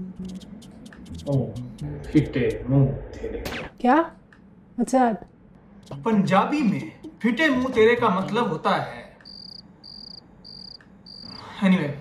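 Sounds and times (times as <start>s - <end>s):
person's voice: 7.4s - 8.5s
cricket chirping: 9.2s - 11.6s.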